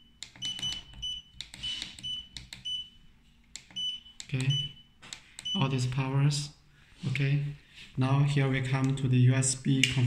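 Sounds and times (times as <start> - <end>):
short high keypad beeps: 0.0 - 2.9.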